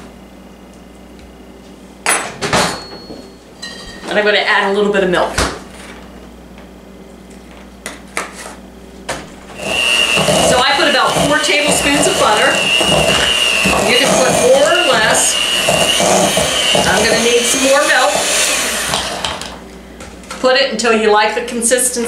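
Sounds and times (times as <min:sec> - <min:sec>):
electric hand mixer whining: 0:09.5 - 0:19.7.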